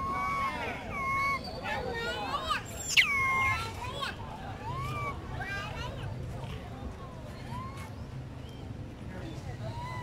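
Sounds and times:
infant monkey crying: 0.0s - 1.5s, 2.8s - 3.6s.

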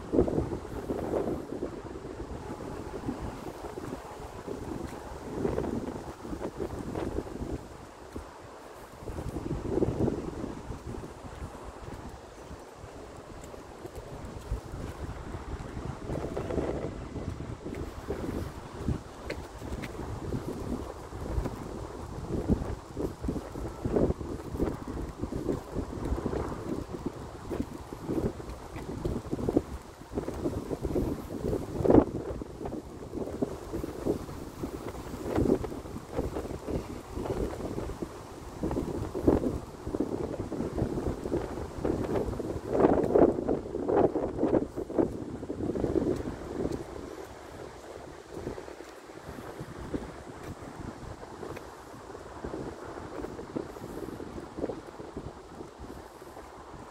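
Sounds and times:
wind gusting on microphone: 0.0s - 56.9s.

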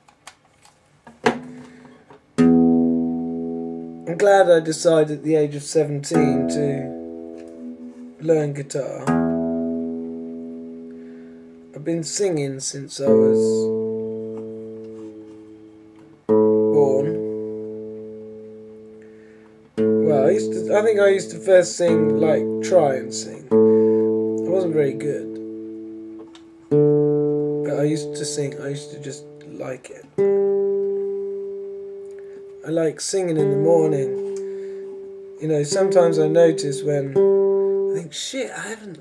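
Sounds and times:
guitar chords ringing out: 1.3s - 39.0s.

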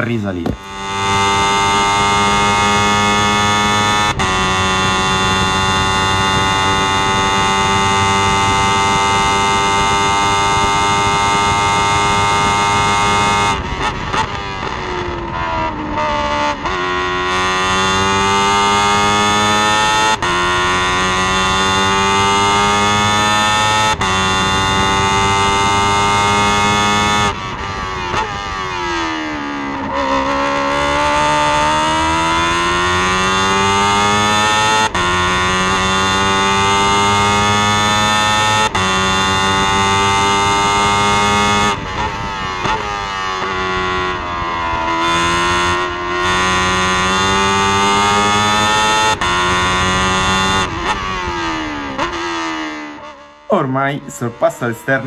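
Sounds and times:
race car engine revving: 0.2s - 55.0s.

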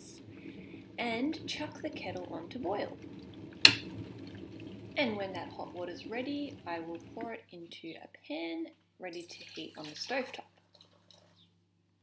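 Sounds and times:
water boiling: 0.0s - 11.5s.

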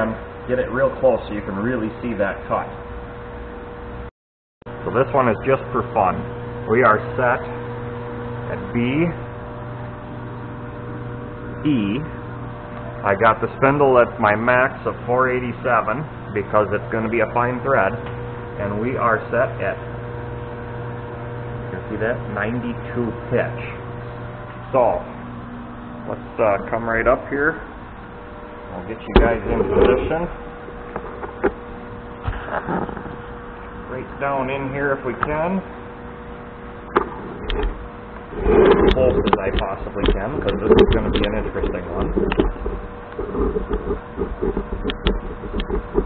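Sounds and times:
lathe electric drive humming: 4.7s - 46.0s
man speaking: 26.1s - 27.6s, 28.7s - 30.4s, 38.9s - 42.2s.

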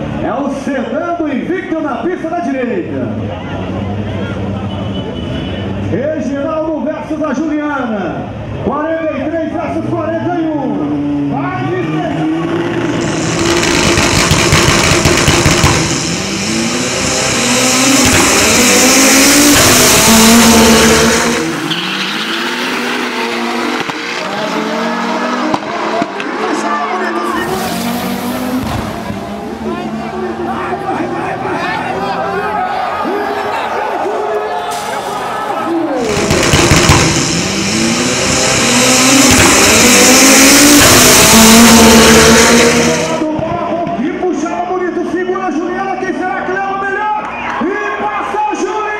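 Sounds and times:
racing car engines revving: 2.2s - 45.1s
crowd voices: 3.0s - 6.0s, 8.2s - 48.9s.

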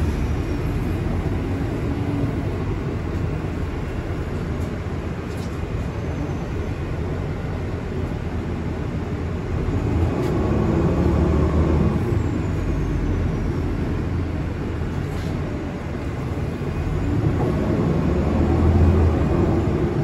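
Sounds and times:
bus engine rumble: 0.0s - 20.0s
road noise: 0.0s - 20.0s.

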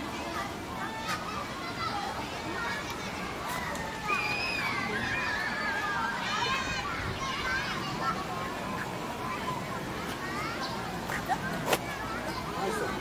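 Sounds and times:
people chattering: 0.0s - 13.0s.

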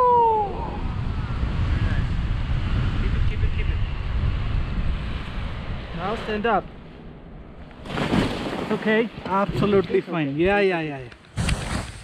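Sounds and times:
wind buffeting microphone: 0.0s - 8.5s.

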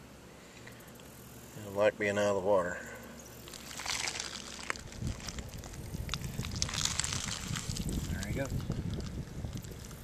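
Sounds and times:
wind buffeting microphone: 4.8s - 10.0s.

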